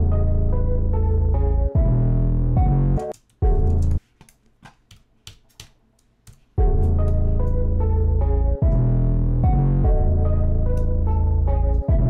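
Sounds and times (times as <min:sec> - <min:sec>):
hip-hop beat with deep bass: 0:06.6 - 0:12.0.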